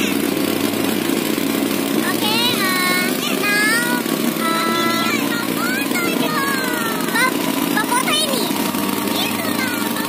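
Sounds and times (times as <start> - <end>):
boat engine running: 0.0 - 10.0
high-pitched voices calling out: 2.0 - 10.0.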